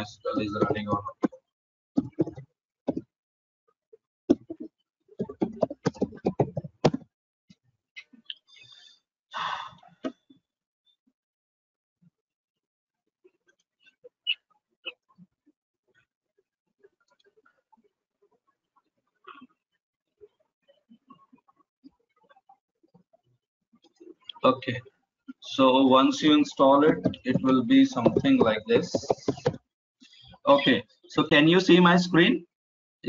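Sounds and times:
typing on computer keyboard: 5.2 - 7.0, 26.8 - 29.6.

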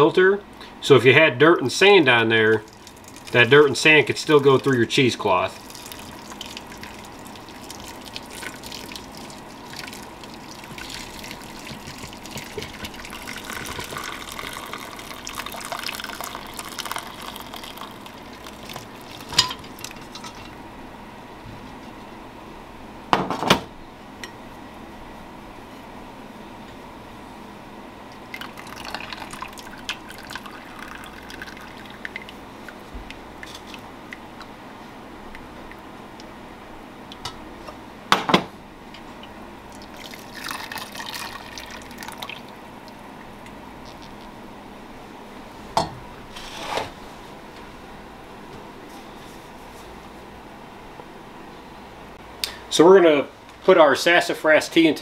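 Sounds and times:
tea pouring through strainer: 2.4 - 20.6, 28.3 - 33.8, 39.7 - 42.5, 43.8 - 44.3.

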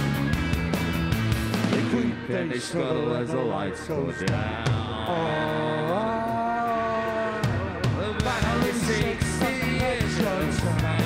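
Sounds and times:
rock band holding long note: 0.0 - 11.0.

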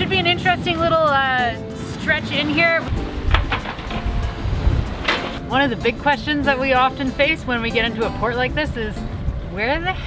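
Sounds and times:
faint background music: 0.0 - 10.0
wind buffeting microphone: 0.0 - 10.0.

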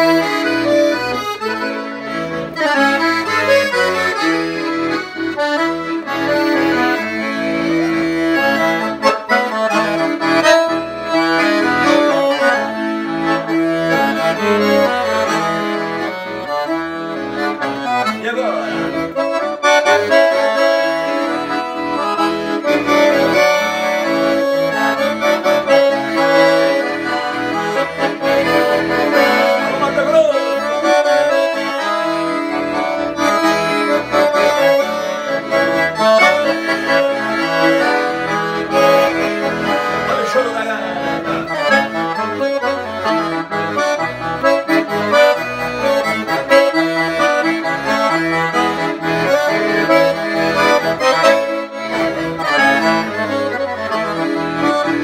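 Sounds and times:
solo piano accordion tune: 0.0 - 55.0.

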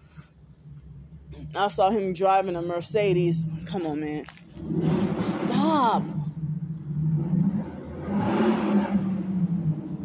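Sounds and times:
car engine running: 0.0 - 10.0.

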